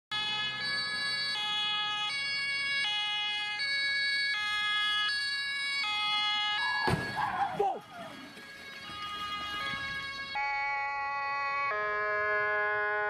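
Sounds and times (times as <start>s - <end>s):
two-tone ambulance siren: 0.1s - 13.0s.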